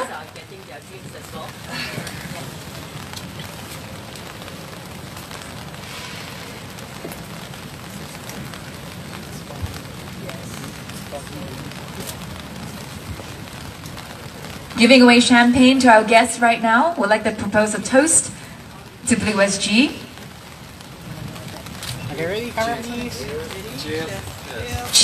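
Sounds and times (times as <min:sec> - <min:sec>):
murmur of voices: 0:00.0 - 0:25.0
steady noisy hiss: 0:00.0 - 0:25.0.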